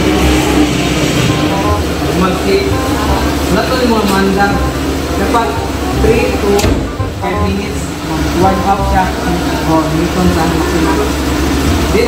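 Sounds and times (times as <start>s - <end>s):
steady low rumble: 0.0s - 12.0s
man talking: 2.0s - 11.2s.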